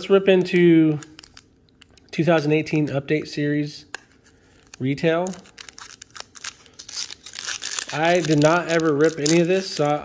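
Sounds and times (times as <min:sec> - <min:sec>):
wrapper crinkling and tearing: 0:00.9 - 0:02.0, 0:04.2 - 0:10.0.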